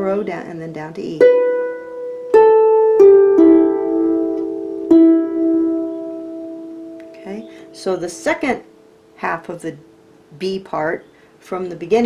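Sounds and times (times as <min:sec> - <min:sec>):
harp plucked notes: 0:00.0 - 0:09.9.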